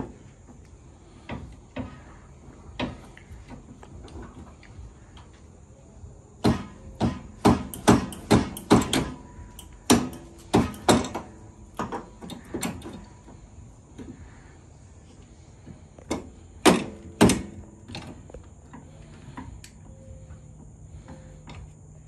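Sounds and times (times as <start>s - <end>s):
metal-on-metal knocks: 6.4s - 13.0s.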